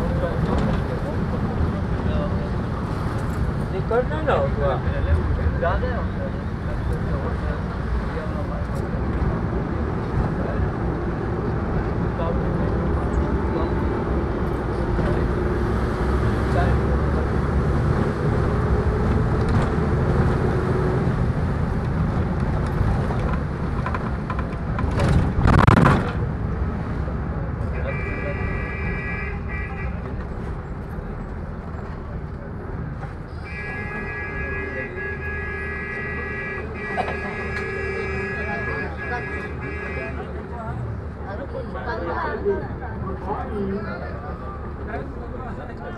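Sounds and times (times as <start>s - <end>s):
road and engine rumble: 0.0s - 45.9s
vehicle horn: 27.7s - 30.0s, 33.4s - 40.3s.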